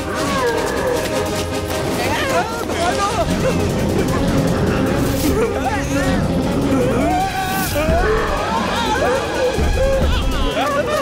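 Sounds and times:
background music: 0.0s - 11.0s
voices crying out: 4.6s - 11.0s.

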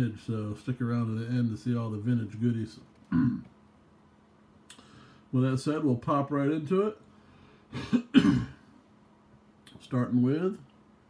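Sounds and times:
man clearing his throat: 3.1s - 3.5s, 7.7s - 8.6s.

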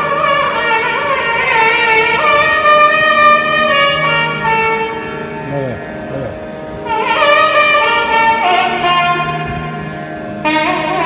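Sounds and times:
double-reed wind instrument melody: 0.0s - 11.0s
steady low drone: 0.0s - 11.0s.

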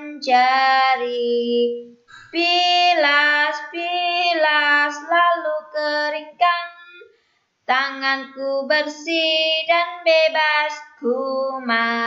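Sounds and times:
child singing unaccompanied: 0.0s - 6.8s, 7.7s - 12.0s.

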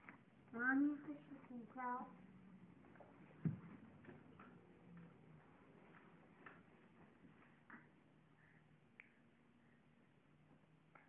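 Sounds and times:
dull thump: 3.4s - 3.8s.

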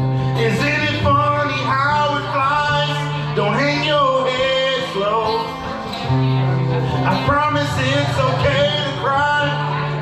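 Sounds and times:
acoustic guitar low notes: 0.0s - 10.0s.

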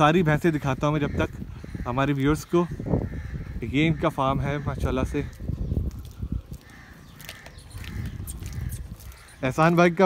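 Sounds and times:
crows cawing faintly: 0.7s - 10.0s.

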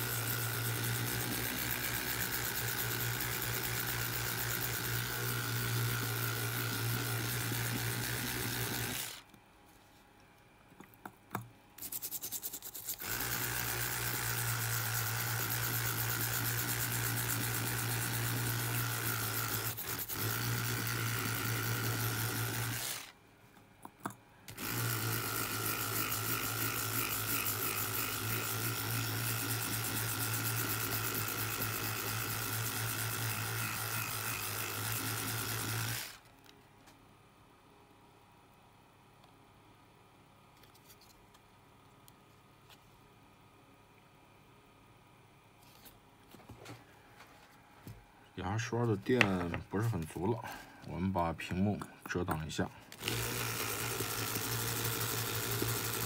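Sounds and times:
electric toothbrush buzzing: 0.0s - 9.2s, 11.8s - 23.2s, 24.5s - 36.3s, 53.0s - 56.0s.

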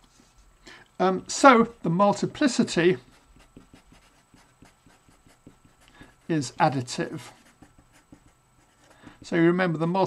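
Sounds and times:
marker pen scratching paper: 3.0s - 9.4s.

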